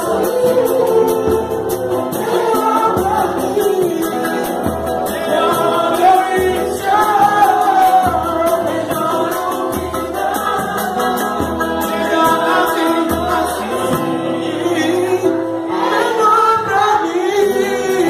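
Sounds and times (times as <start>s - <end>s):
samba percussion: 0.0s - 18.0s
voices singing together: 0.0s - 18.0s.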